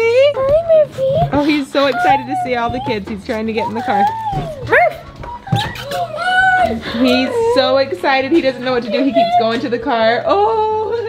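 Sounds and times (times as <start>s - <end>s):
puppy whining and yipping: 3.6s - 7.6s.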